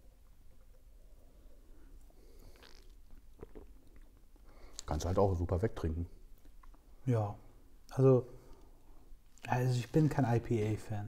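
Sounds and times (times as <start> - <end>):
sipping and swallowing: 2.0 - 4.9.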